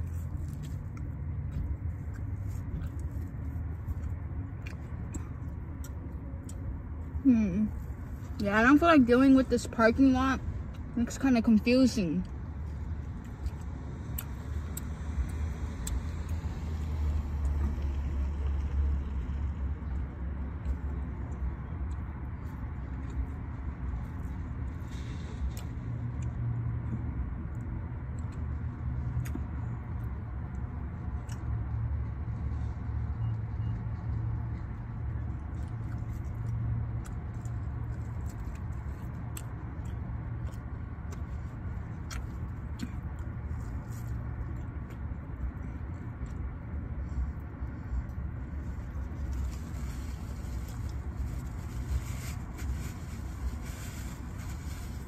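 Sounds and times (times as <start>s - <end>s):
clicks and rustles of eating: 0.0s - 7.0s, 33.7s - 55.0s.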